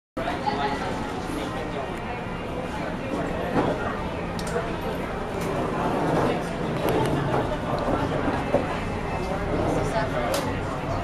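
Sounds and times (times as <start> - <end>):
indistinct chatter: 0.2 - 11.0.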